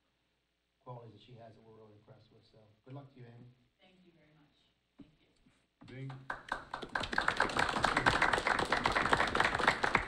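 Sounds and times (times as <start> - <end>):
people applauding: 6.1 - 10.0.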